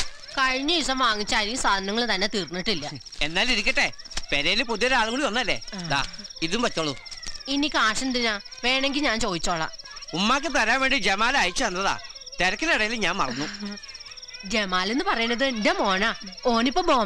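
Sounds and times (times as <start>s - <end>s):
crickets chirping: 0.0s - 17.0s
people talking: 0.4s - 13.8s, 14.4s - 17.0s.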